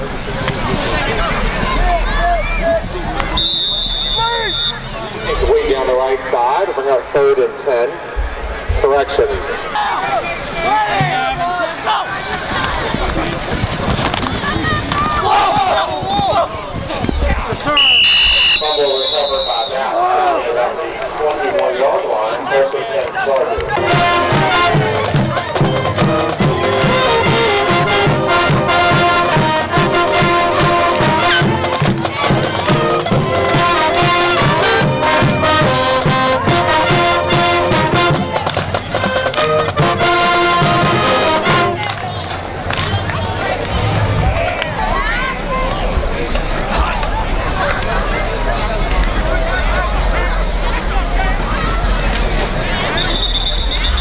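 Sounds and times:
crowd voices: 0.0s - 54.0s
short high whistle blast: 3.3s - 4.9s, 17.8s - 19.8s, 52.9s - 54.0s
band playing brass tune: 23.7s - 44.4s
steady drum beat: 23.8s - 41.8s.

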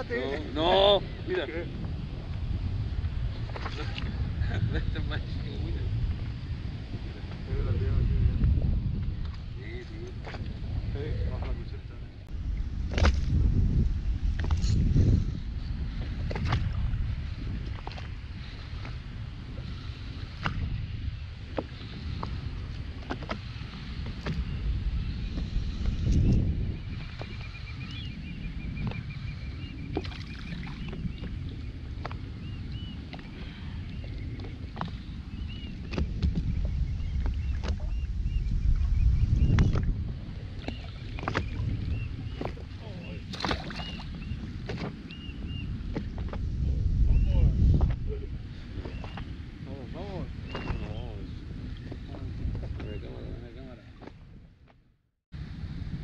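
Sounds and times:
wind rumbling on microphone: 0.0s - 56.0s
water lapping against boat hull: 3.3s - 4.6s, 8.3s - 10.7s, 15.9s - 24.6s, 29.7s - 46.5s, 47.7s - 54.8s.

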